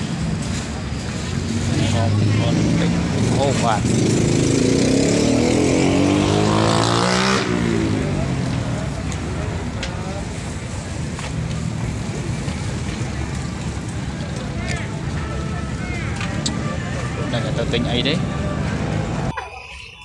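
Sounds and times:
people's voices: 0.0 - 20.0
engine speeding up: 1.2 - 10.3.

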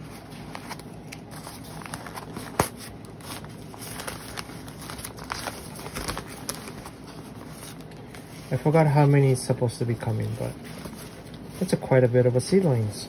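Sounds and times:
paper and plastic crinkling: 0.0 - 13.0.

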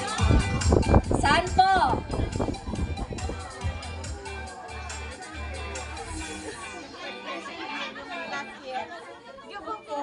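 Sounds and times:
women talking over one another: 0.0 - 3.9
voices through a microphone: 0.0 - 10.0.

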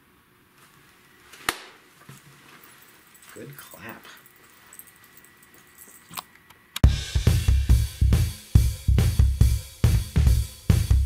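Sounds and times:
faint rustling: 0.5 - 6.2.

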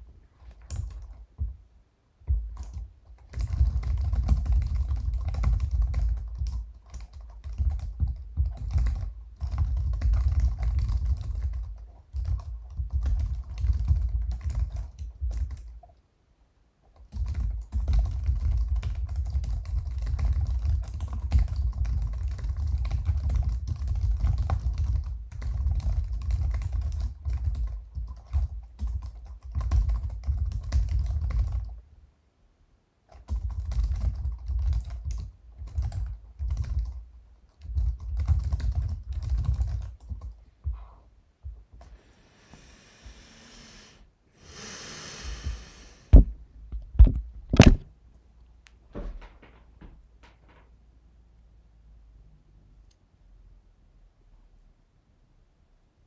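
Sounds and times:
typing on computer keyboard: 0.5 - 1.5, 2.3 - 16.0, 16.8 - 31.8, 33.1 - 40.4.

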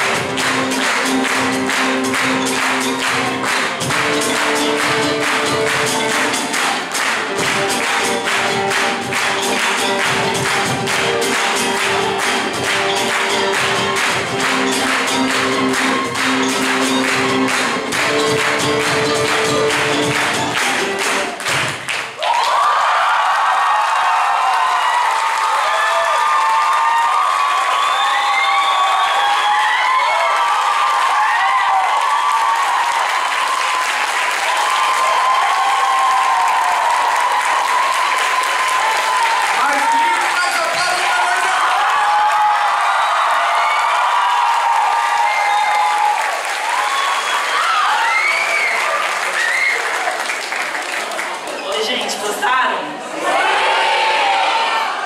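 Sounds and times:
orchestra music: 0.0 - 21.8
audience applause and cheering: 0.0 - 55.0
crowd shouts and whoops: 9.7 - 17.9, 22.1 - 50.3, 53.1 - 55.0.

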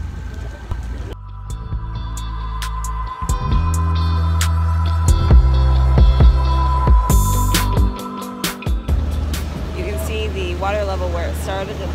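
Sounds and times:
low outdoor rumble: 0.0 - 11.9
droning music with deep bass: 1.0 - 11.9.

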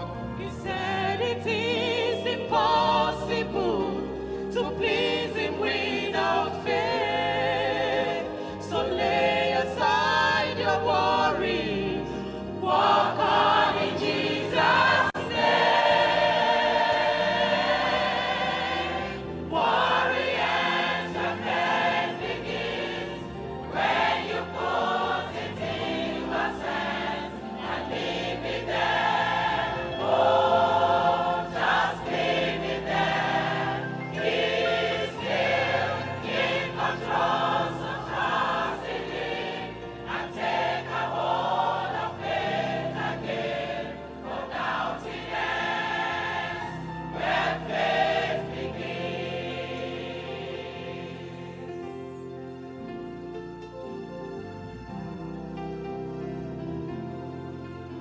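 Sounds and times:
choir singing gospel: 0.0 - 58.0
instrumental accompaniment: 0.0 - 58.0.

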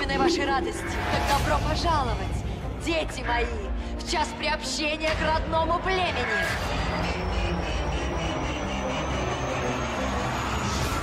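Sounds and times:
low rumbling drone: 6.2 - 11.0.

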